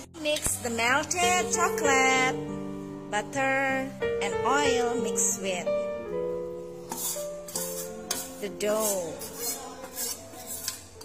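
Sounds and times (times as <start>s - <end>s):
held keyboard notes music: 0.0s - 10.1s
whisk clinking on steel bowl: 6.9s - 11.0s.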